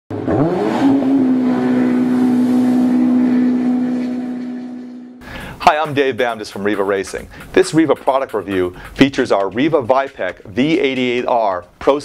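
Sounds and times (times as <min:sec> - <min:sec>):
engine revving: 0:00.1 - 0:05.2.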